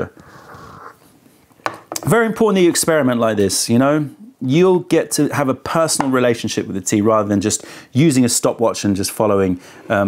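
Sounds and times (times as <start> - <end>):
soft breathy noise: 0.0 - 1.5, 7.6 - 8.0, 9.6 - 10.0
teacup knocking on tray: 1.7 - 2.1.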